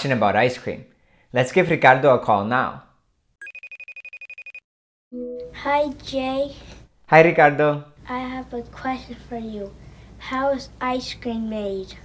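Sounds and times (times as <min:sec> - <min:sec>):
telephone ringing trill: 0:03.4 - 0:04.6.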